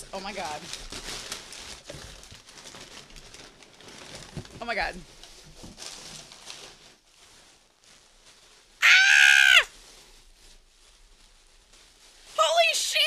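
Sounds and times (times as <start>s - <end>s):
woman squealing with delight: 8.8s - 9.7s.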